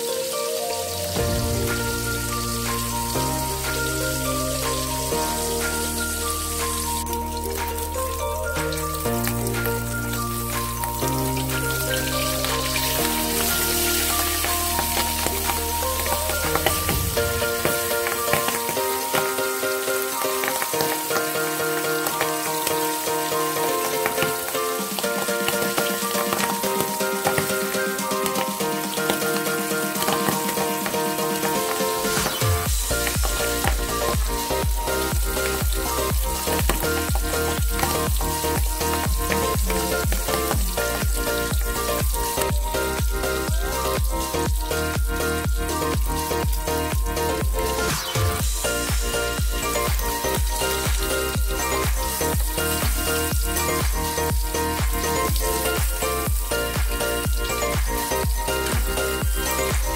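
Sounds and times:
background music with bass: 0:00.0 - 0:59.9
fish sizzling in hot oil: 0:00.0 - 0:59.9.

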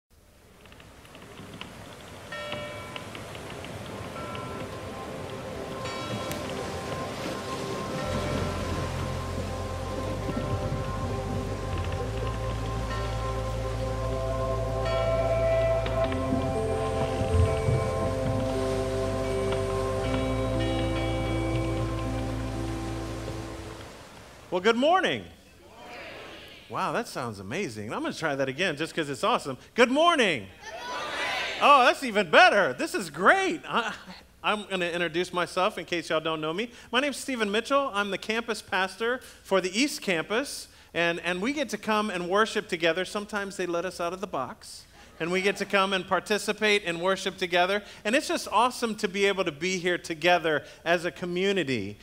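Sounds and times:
rain-like hiss: 0:00.1 - 0:52.0
ambient held chords: 0:02.3 - 0:24.5
bright chime-like strikes: 0:04.2 - 0:11.1
deep bass notes: 0:08.0 - 0:23.8.

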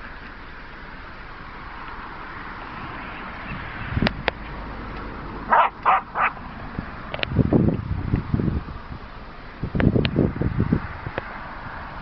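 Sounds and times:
dog barking: 0:05.5 - 0:06.4.

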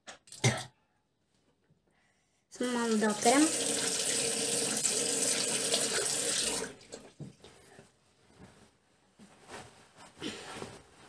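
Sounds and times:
tap water running into basin: 0:02.7 - 0:07.3.

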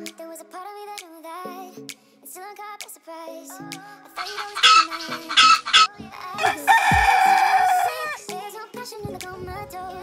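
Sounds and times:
background music: 0:00.0 - 0:10.0
chicken squawking: 0:04.2 - 0:08.2.

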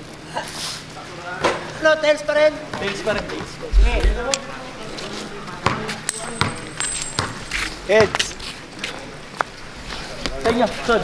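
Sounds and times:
basketball bouncing on court: 0:05.6 - 0:08.2.

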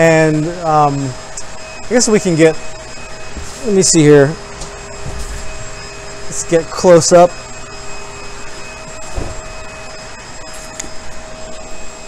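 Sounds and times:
industrial blower whirring hum: 0:00.0 - 0:12.0
soft low thump: 0:09.1 - 0:09.6.

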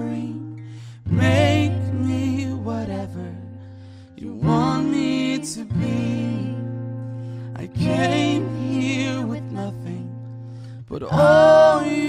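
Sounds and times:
acoustic guitar strum: 0:00.0 - 0:12.0.

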